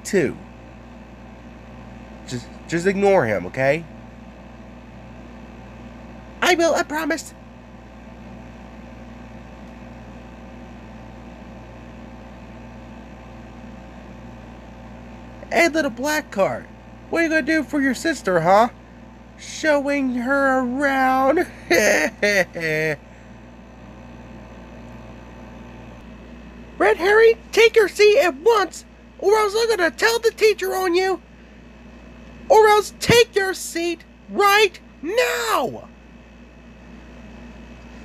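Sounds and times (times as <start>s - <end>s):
background hum: 0.0s - 38.0s.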